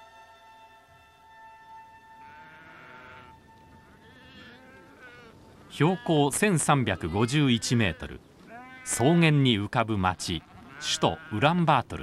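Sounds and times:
sheep bleating: 2.2s - 9.2s, 10.1s - 12.0s.

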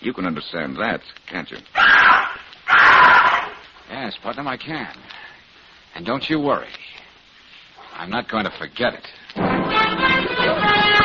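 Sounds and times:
condor screeching: 1.8s - 3.7s.

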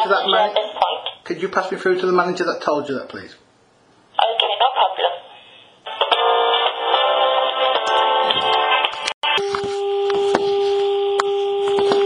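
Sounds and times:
telephone hold music: 5.9s - 12.0s.

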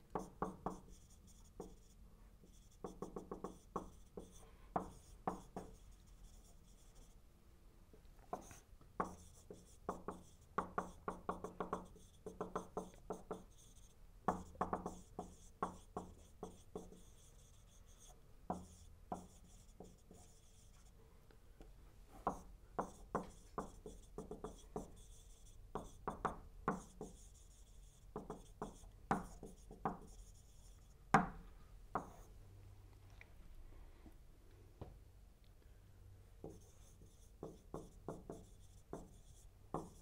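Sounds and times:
marker writing on whiteboard: 0.0s - 7.2s, 8.3s - 21.0s, 22.2s - 32.4s, 36.4s - 40.0s.

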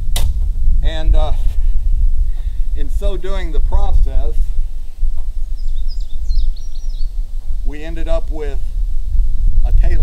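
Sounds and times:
steady low rumble: 0.0s - 10.0s
man's voice: 0.8s - 1.6s, 2.7s - 4.6s, 7.7s - 8.6s, 9.6s - 10.0s
high bird chirps: 5.5s - 7.3s.

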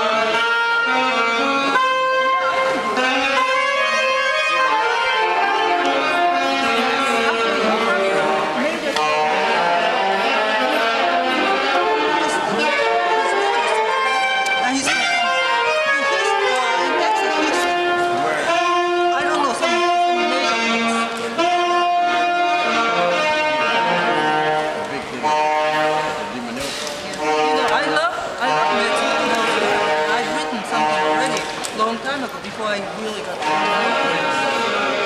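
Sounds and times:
saxophone melody: 0.0s - 35.0s.

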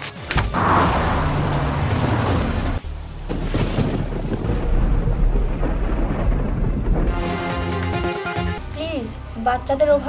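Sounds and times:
thunder rumbling: 0.5s - 7.8s
rain hiss: 2.5s - 7.7s.

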